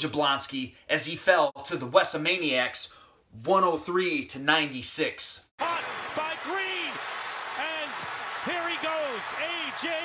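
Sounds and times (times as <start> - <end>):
announcer commentating: 4.6 - 10.0
stadium crowd noise: 5.6 - 10.0.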